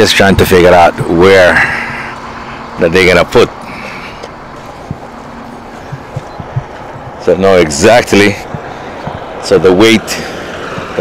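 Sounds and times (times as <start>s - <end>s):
truck yard background noise: 0.0s - 11.0s
soft low thumps: 3.4s - 11.0s.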